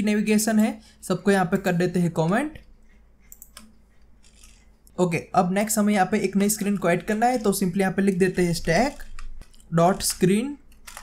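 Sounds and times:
keyboard and mouse clicks: 2.6s - 4.7s, 6.6s - 11.0s.

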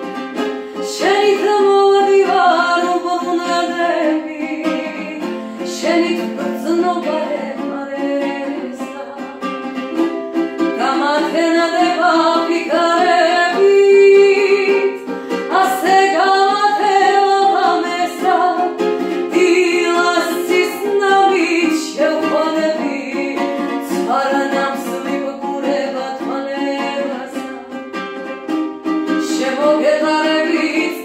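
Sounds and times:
woman singing: 0.0s - 28.3s, 29.0s - 31.0s
ukulele strumming: 0.0s - 31.0s.

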